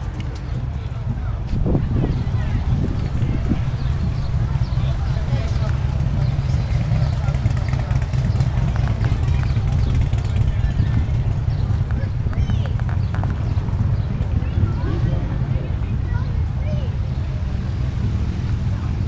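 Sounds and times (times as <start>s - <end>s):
crowd chatter: 0.0s - 19.0s
steady low rumble: 0.0s - 19.0s.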